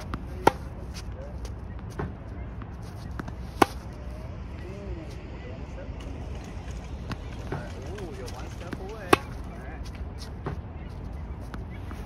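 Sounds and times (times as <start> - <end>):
tennis racket hitting ball: 0.0 - 1.0, 3.1 - 3.9, 7.1 - 9.5.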